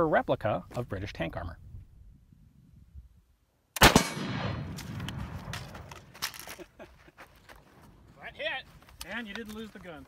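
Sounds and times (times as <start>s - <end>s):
rifle shot echo: 3.8s - 6.1s
rifle handling clicks and knocks: 4.7s - 6.7s, 8.8s - 9.9s.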